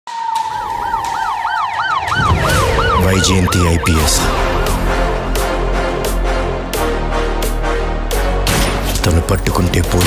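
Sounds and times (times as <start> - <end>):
siren yelping: 0.1 - 4.8.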